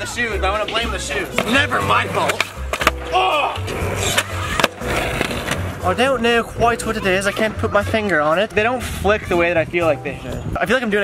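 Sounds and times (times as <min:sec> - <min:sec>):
skateboard wheels on concrete: 0:00.0 - 0:09.6
skateboard clacking on ground: 0:00.5 - 0:03.1, 0:03.8 - 0:05.7.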